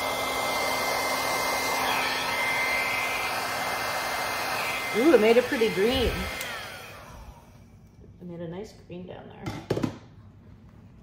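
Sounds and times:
hair dryer blowing: 0.0 - 7.7
hair dryer switch click: 6.1 - 6.8.

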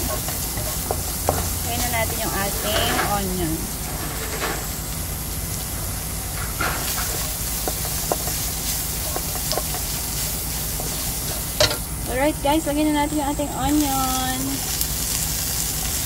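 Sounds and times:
wooden spatula scraping: 0.0 - 4.6, 6.8 - 11.6
meat sizzling in a wok: 0.0 - 16.0.

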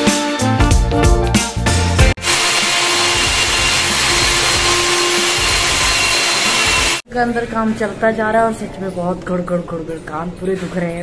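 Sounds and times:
core drill grinding through masonry: 2.2 - 7.0.

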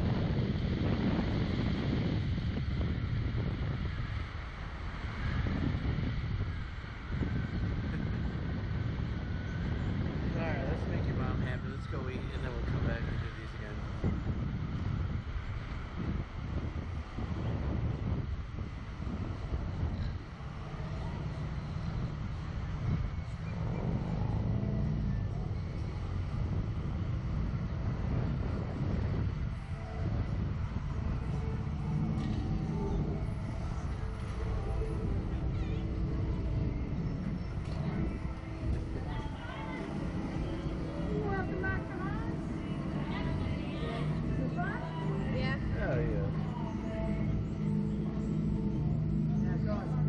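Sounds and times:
faint voices: 0.0 - 50.0
wind buffeting microphone: 0.0 - 50.0.

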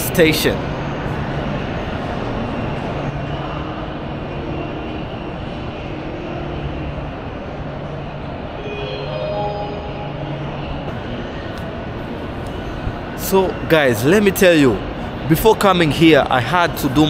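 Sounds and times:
rumbling hum of station hall: 0.0 - 17.0
soft background music: 2.5 - 14.7.

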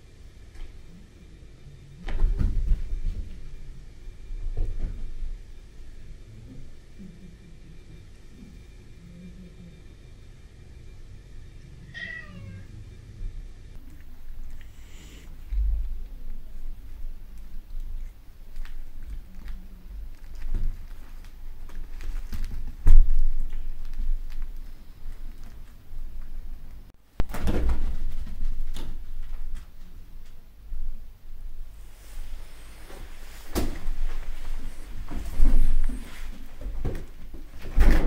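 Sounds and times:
cat meowing: 11.9 - 12.7
cats pouncing on fabric tunnel: 17.4 - 26.3.

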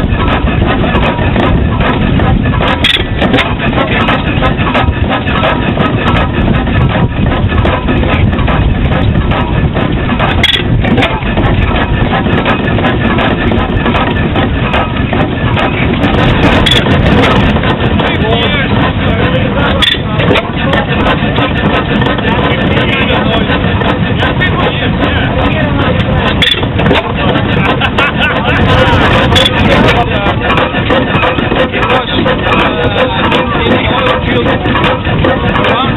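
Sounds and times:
stationary engine running: 0.0 - 35.9
people talking: 2.8 - 6.3, 14.4 - 35.9.

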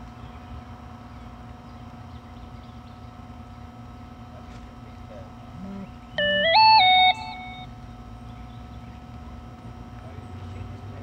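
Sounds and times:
electronic three-note tone: 6.2 - 7.7.

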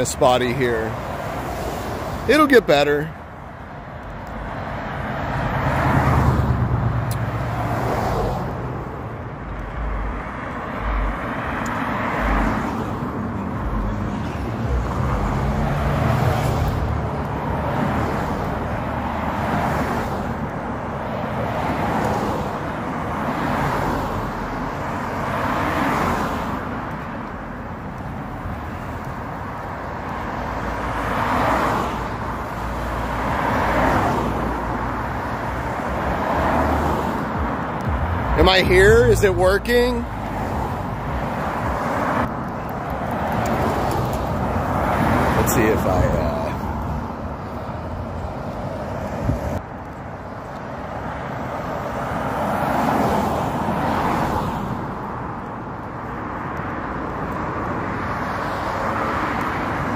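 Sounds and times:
cars passing: 0.0 - 59.9.

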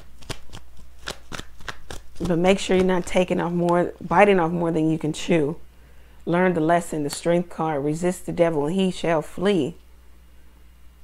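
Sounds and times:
cards being shuffled: 0.0 - 4.1.

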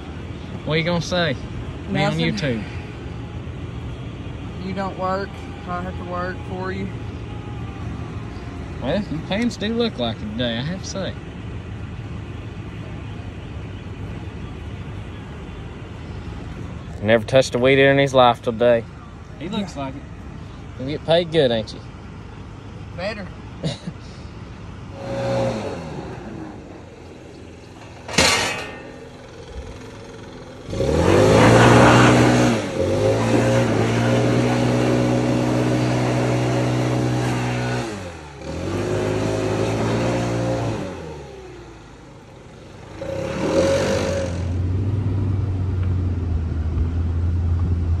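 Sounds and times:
mower engine revving: 24.9 - 42.0, 42.6 - 45.6.

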